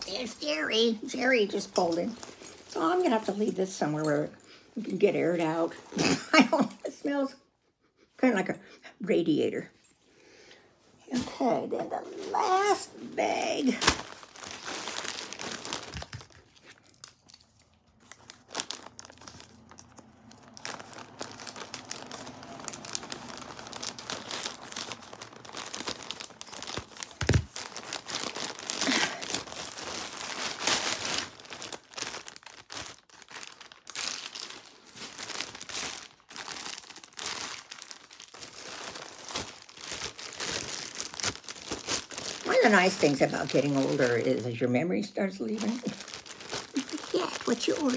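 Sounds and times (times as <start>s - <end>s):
plastic bag crinkling: 0.0s - 7.3s, 11.1s - 47.9s.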